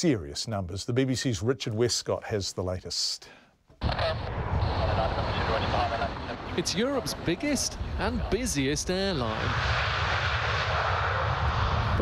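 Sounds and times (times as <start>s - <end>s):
jet engines roaring: 3.8s - 12.0s.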